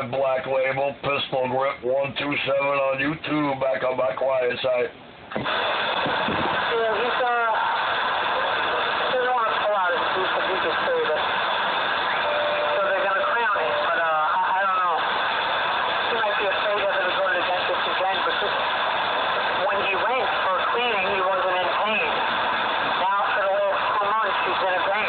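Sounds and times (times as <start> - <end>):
radio static: 4.1 - 25.0
garbled radio voices: 5.4 - 25.0.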